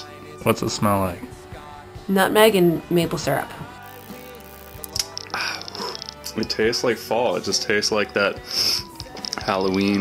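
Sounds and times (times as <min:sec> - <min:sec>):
soft background music: 0:00.0 - 0:10.0
glass click: 0:04.7 - 0:06.4
man sipping from glass: 0:04.9 - 0:06.4
breathy exhale: 0:05.3 - 0:06.0.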